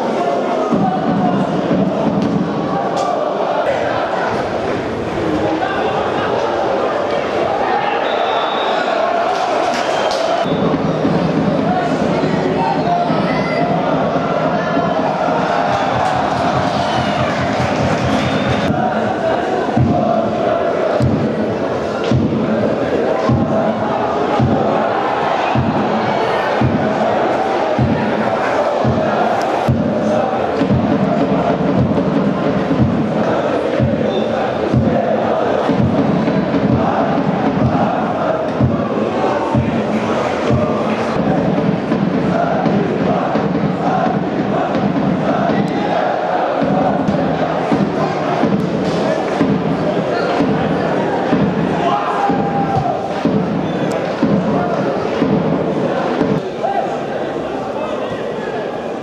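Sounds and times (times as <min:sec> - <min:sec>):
football crowd chanting: 0:00.0 - 0:59.0
drum beating: 0:00.1 - 0:06.4, 0:09.1 - 0:56.8.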